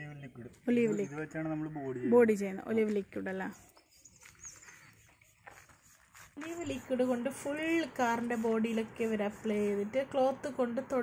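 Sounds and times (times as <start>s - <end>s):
faint bird chirp: 0.0s - 2.1s, 3.4s - 6.0s.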